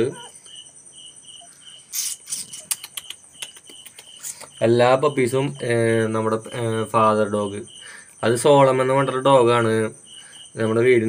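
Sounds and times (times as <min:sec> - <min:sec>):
high insect hum: 0:00.0 - 0:11.0
insect chirping: 0:00.0 - 0:11.0.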